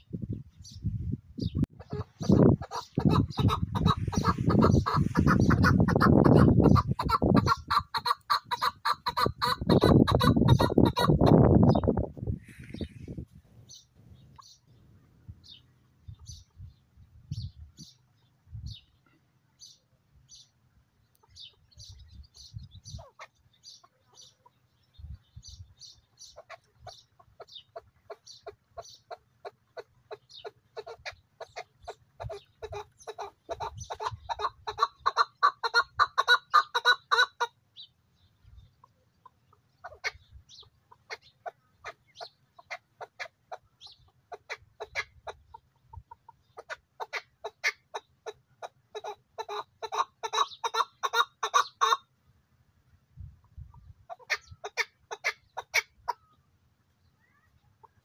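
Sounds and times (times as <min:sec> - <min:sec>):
partridge rapid clucking: 0:01.8 - 0:11.9.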